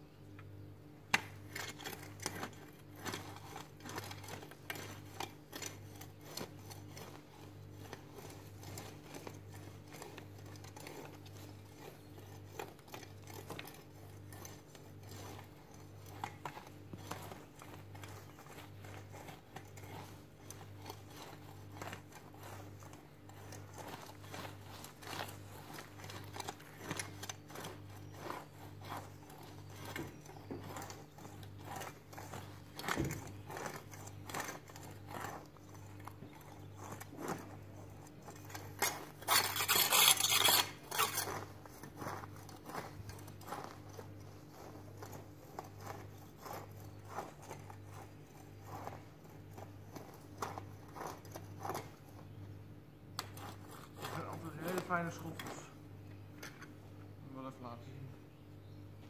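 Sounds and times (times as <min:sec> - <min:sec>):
garden hoe scraping soil: 0:01.0 - 0:57.5.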